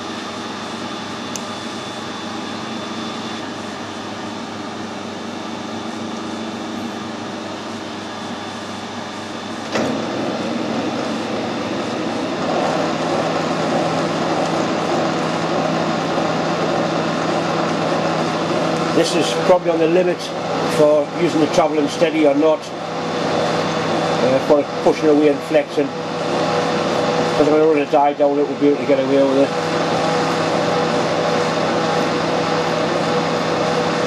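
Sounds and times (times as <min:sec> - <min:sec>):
metal lathe motor and gear hum: 0:00.0 - 0:34.0.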